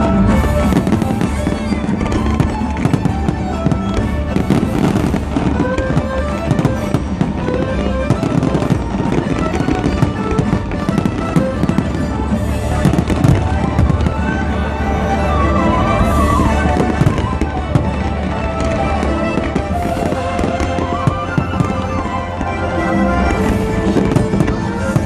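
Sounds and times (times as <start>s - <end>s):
fireworks bursting and crackling: 0.0s - 25.0s
loud music: 0.0s - 25.0s.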